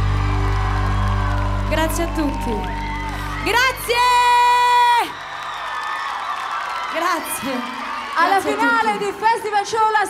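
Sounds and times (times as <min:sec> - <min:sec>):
crowd cheering and whooping: 0:00.0 - 0:09.7.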